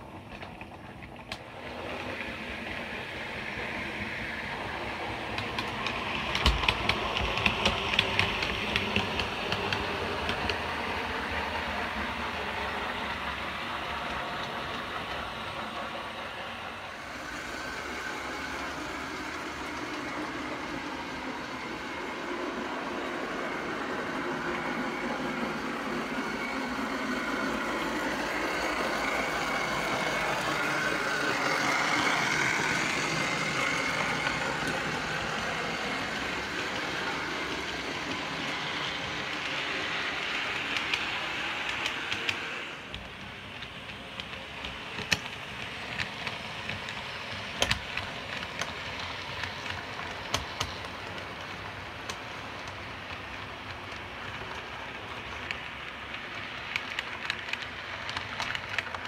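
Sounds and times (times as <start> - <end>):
steam locomotive hissing: 1.1 - 59.0.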